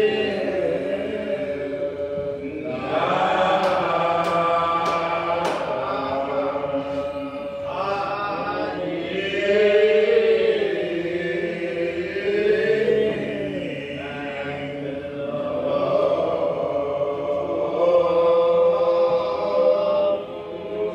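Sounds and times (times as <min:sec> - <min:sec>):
congregation singing a hymn: 0:00.0 - 0:20.9.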